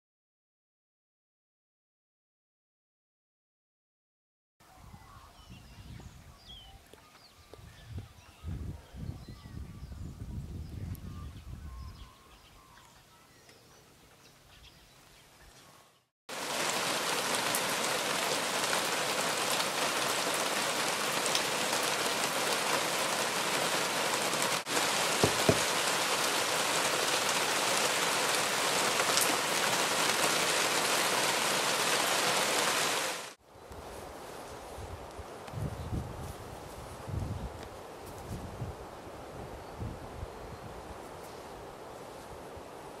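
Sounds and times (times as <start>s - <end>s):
soft bird chirps: 4.7s - 16.1s
steady rain falling: 16.3s - 33.4s.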